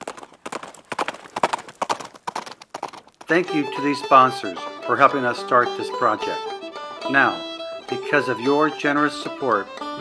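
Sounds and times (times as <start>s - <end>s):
horse hoofbeats at a run: 0.0s - 5.0s.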